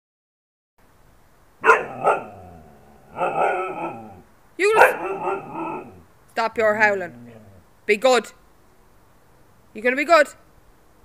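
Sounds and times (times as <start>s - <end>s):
dog barks: 1.6s - 6.0s
dog howling: 1.6s - 6.0s, 7.0s - 7.6s.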